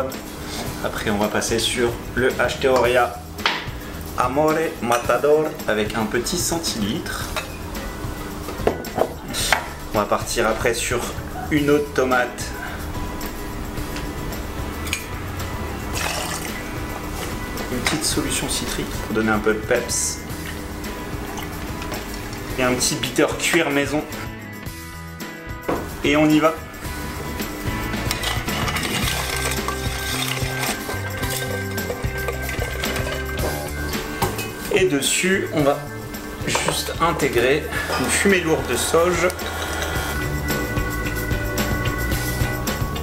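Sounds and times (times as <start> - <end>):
background music: 0.0 - 43.0
ice clinking in metal tin: 15.9 - 16.6, 27.8 - 33.7
liquid pouring into jigger: 15.9 - 16.6, 28.1 - 33.3.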